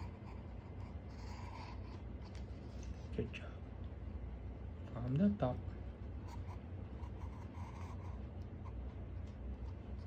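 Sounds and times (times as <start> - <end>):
pencil scratching on paper: 0.0 - 3.0, 6.2 - 8.9.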